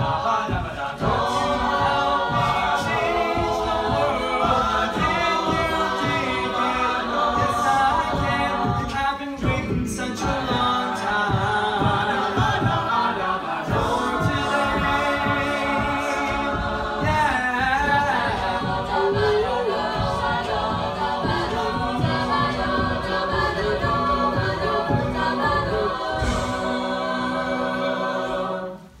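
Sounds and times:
a cappella group singing chords: 0.0 - 29.0
low vocal beat: 0.0 - 29.0.

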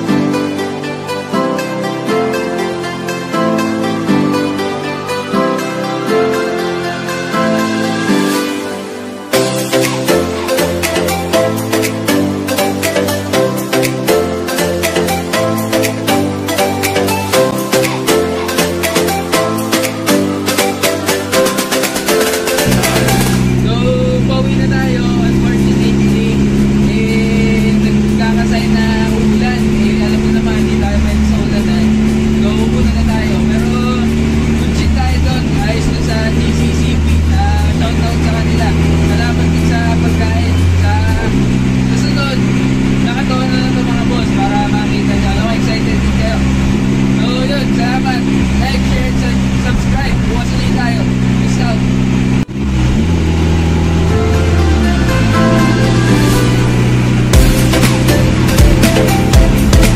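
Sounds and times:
background music: 0.0 - 51.0, 53.0 - 59.9
car engine running: 8.3 - 59.9
man talking: 22.6 - 46.5, 47.1 - 51.9.

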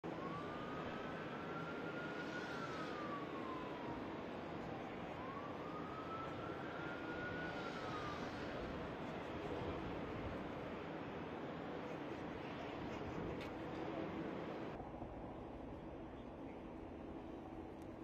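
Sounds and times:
emergency vehicle siren wailing: 0.0 - 11.5
steady rushing background noise: 0.0 - 18.0.

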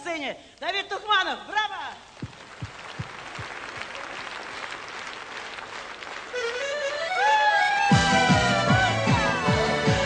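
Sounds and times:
large audience applauding: 2.0 - 10.0
low thuds: 2.2 - 3.8.

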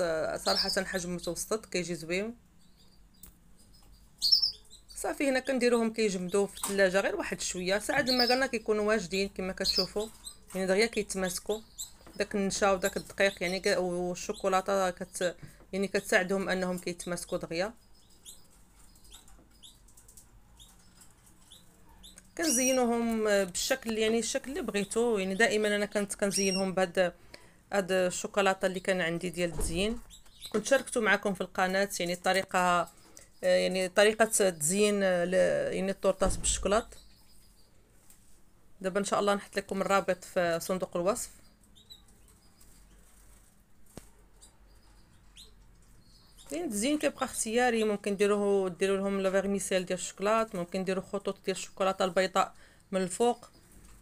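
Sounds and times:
small bird chirping: 0.2 - 27.4, 28.4 - 35.0, 35.8 - 37.8, 40.7 - 48.3.

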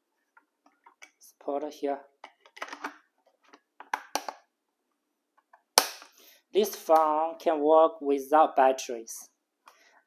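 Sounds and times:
plastic telephone housing clicks: 3.8 - 4.4.

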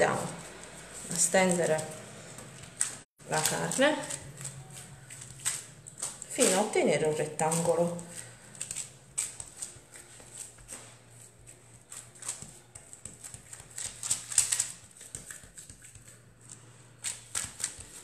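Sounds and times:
paper crackling: 0.0 - 18.0.

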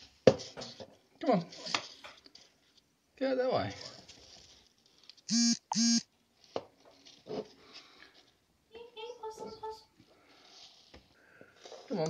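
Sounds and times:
faint broken tone: 5.3 - 6.0
loud electronic beeps: 5.3 - 6.0.

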